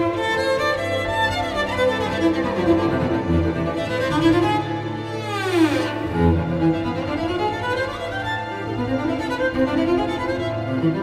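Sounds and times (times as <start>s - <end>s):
orchestral strings bowing: 0.0s - 11.0s.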